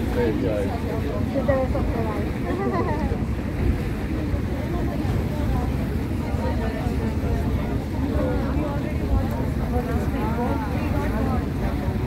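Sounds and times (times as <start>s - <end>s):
water noise: 0.0s - 12.0s.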